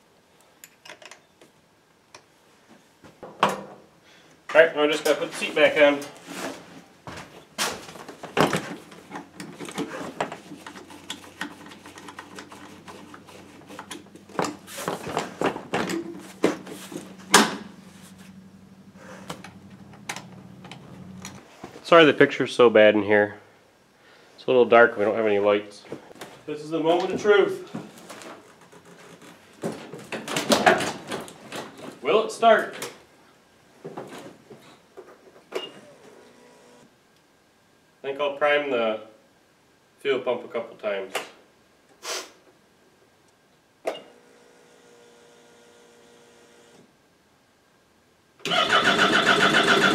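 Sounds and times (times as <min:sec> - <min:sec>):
fuel pump humming: 0:16.0 - 0:21.4.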